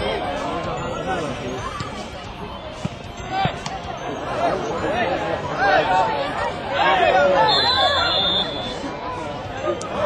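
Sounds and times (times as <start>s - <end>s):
voices calling and shouting: 0.0s - 10.0s.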